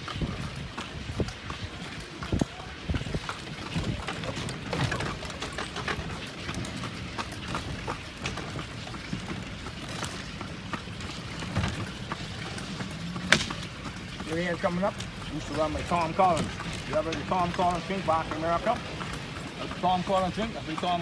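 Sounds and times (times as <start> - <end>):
carriage rolling: 0.0 - 21.0
horse hooves clip-clopping: 0.0 - 21.0.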